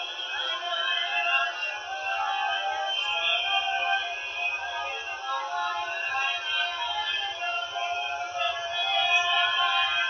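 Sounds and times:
congregation singing: 0.0 - 10.0.

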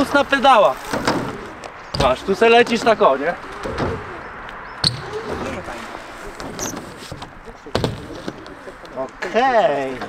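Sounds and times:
bike tyres rolling on ramp: 0.0 - 4.2
outdoor noise: 0.0 - 10.0.

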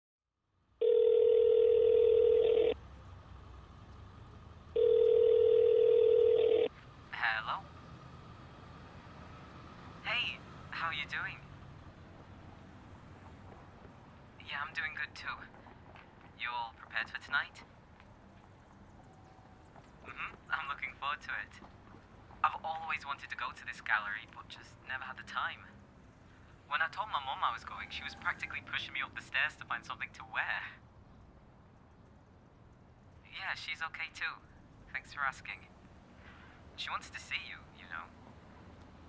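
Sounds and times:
telephone ringback tone: 0.8 - 2.8, 4.8 - 6.7.

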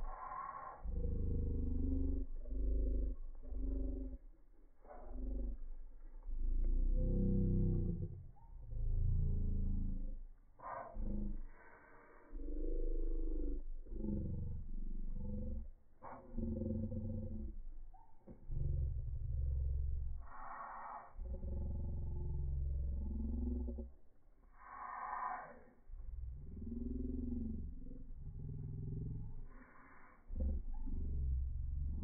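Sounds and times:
deep drawn-out pitched sounds: 0.0 - 11.7, 12.3 - 32.0.

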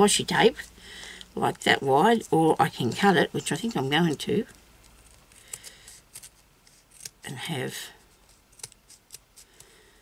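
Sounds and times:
scissors snipping: 4.9 - 7.2, 8.5 - 9.7.

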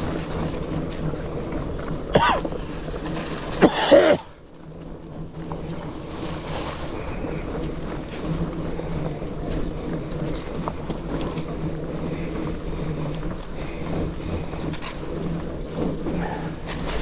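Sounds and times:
bike tyres crunching leaves: 0.0 - 17.0
steady low hum: 0.0 - 17.0.

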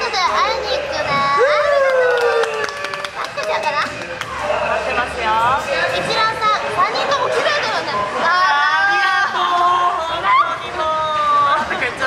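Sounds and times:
hand claps: 1.8 - 4.5.

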